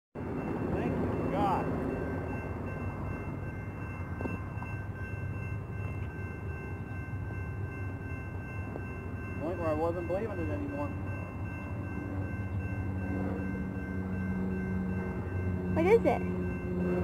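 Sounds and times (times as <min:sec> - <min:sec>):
thin steady high tones: 0:00.2 - 0:17.0.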